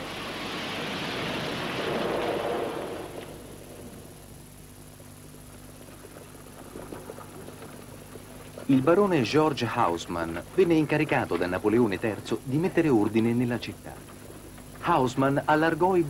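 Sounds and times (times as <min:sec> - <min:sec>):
broad rushing noise: 0:00.0 - 0:04.5
faint steady hiss: 0:00.0 - 0:16.0
low hum: 0:00.0 - 0:16.0.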